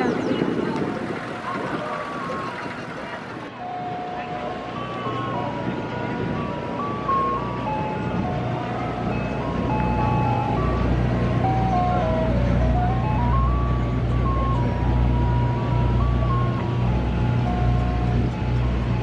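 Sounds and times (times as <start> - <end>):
ice cream truck jingle: 0.0 - 19.0
truck engine idling: 0.0 - 19.0.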